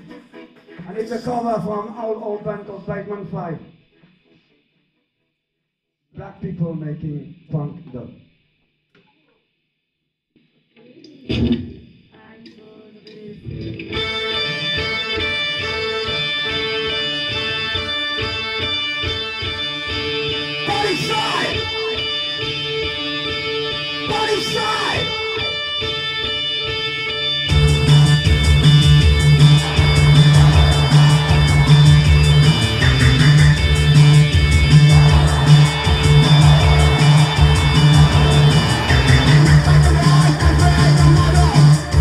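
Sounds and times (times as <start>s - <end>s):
sliding electric guitar: 13.5s - 42.0s
synthesizer and drum-machine pattern: 16.2s - 42.0s
full band playing: 27.5s - 42.0s.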